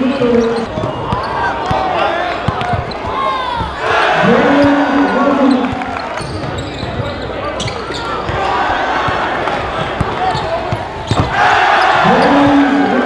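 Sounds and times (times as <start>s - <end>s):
sneakers squeaking: 0.0s - 13.0s.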